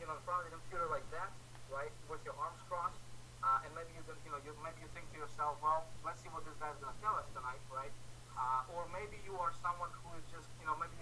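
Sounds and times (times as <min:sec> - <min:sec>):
man talking over video call: 0:00.0 - 0:11.0.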